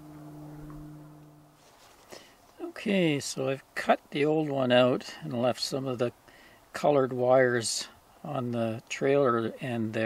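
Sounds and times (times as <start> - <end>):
faint low hum: 0.0 - 3.8.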